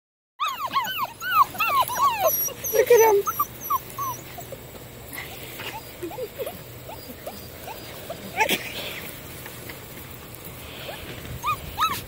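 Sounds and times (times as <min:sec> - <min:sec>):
puppies yipping and whining: 0:00.4 - 0:09.2, 0:10.6 - 0:12.0.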